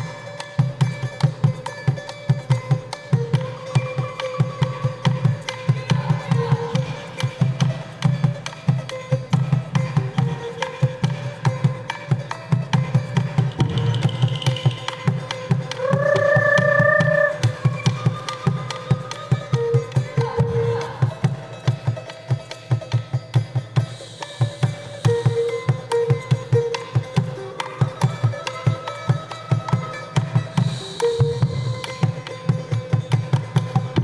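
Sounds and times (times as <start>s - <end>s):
hand drum fast rhythm: 12.8s - 21.4s.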